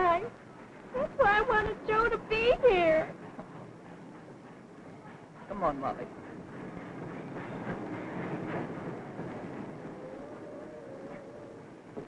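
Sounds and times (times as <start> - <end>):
train rattling rumble: 0.0 - 12.0.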